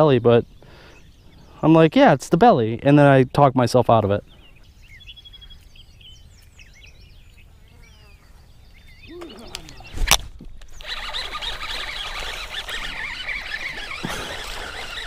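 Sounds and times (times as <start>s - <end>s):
small birds chirping: 0.0s - 15.0s
fishing reel cranking squeal: 10.8s - 15.0s.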